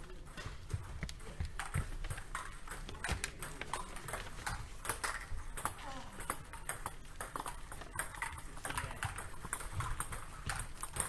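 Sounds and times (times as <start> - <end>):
ping-pong ball clicking: 1.0 - 11.0.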